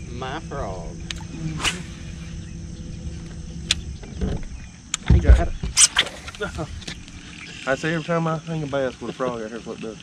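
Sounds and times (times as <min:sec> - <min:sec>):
low rumble: 0:00.0 - 0:08.0
insect chorus: 0:00.0 - 0:10.0.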